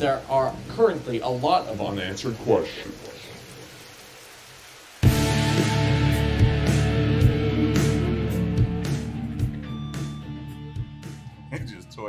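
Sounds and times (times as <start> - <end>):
faint steady hiss: 0.0 - 6.9.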